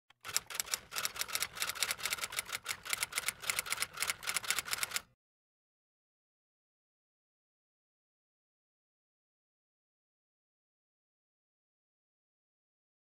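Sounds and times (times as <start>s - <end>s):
rapid key typing clicks: 0.2s - 5.0s.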